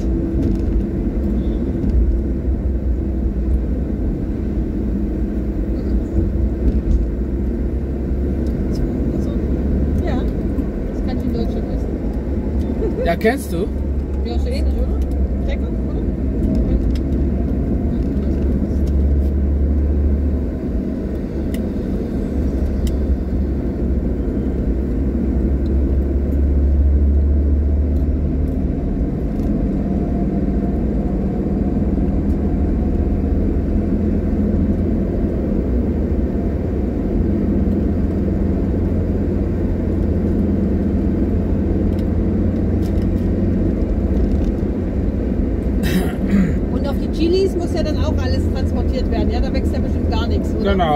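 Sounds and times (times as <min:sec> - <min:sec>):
car engine and tyres rumbling: 0:00.0 - 0:50.9.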